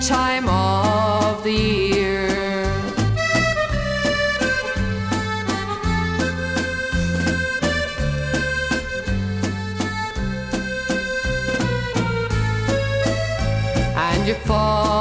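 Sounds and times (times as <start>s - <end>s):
instrumental folk ballad: 0.0s - 15.0s.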